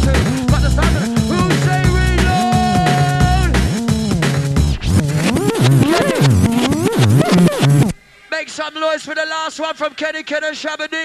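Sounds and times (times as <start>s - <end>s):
fast breakbeat drums: 0.0s - 8.0s
sliding bass line: 3.2s - 8.0s.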